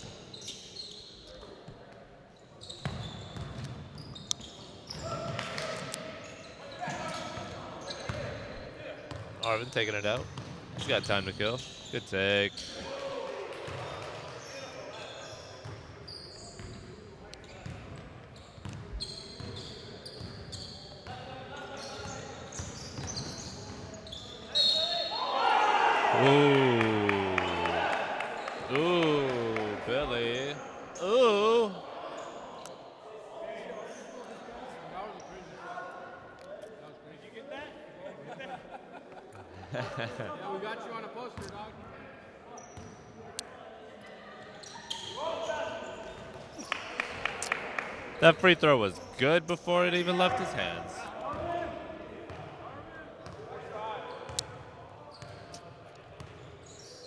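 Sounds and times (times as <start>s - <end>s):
sneakers squeaking: 0.0s - 13.0s, 13.7s - 25.4s, 42.6s - 43.1s, 44.4s - 46.8s, 52.3s - 52.5s, 53.2s - 57.0s
players shouting: 25.0s - 31.8s, 49.3s - 51.8s.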